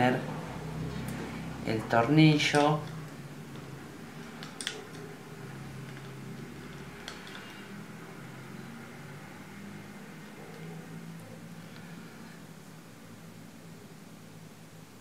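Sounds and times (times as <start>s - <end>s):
low background hum: 0.0s - 15.0s.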